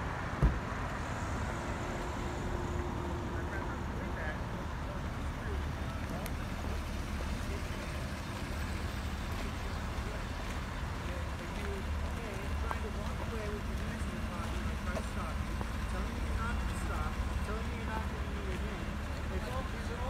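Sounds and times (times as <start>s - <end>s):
vehicles idling rumble: 0.0s - 20.0s
faint distant voices: 2.8s - 20.0s.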